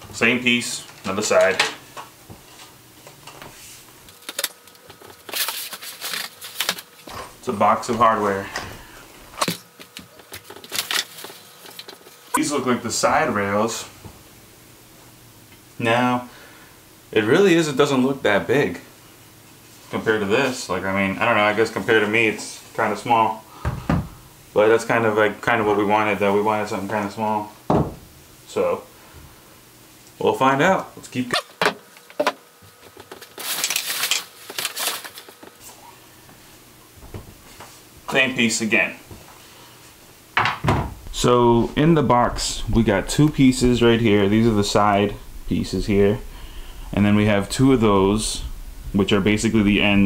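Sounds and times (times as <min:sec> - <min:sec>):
packing material crinkling: 0:04.1 - 0:07.1, 0:09.7 - 0:12.3, 0:32.8 - 0:35.6.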